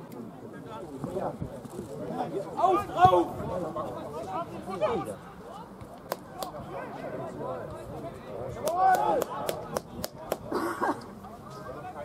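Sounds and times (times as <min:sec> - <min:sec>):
footballers shouting: 0:02.6 - 0:03.4.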